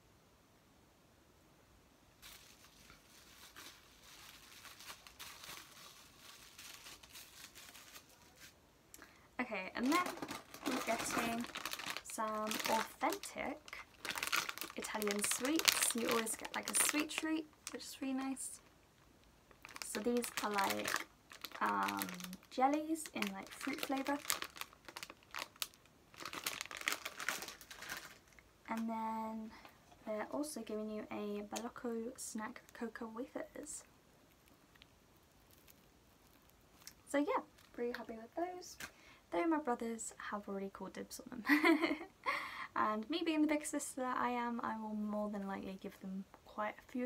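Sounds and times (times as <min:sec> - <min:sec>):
packaging crinkling: 0:02.2 - 0:08.6, 0:09.7 - 0:18.7, 0:19.5 - 0:28.8, 0:34.3 - 0:37.9.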